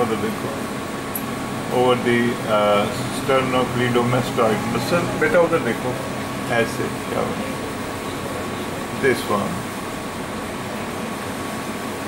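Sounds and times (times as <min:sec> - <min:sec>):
machine hiss and hum: 0:00.0 - 0:12.0.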